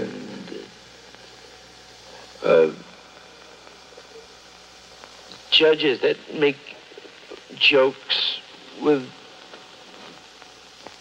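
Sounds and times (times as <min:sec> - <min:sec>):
faint hum: 0:00.0 - 0:11.0
low hiss: 0:00.0 - 0:11.0
man speaking: 0:02.4 - 0:02.9, 0:05.4 - 0:09.2.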